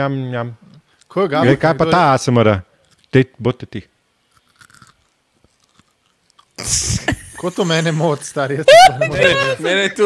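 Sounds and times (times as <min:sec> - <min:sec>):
crunchy chewing: 0:04.3 - 0:06.6.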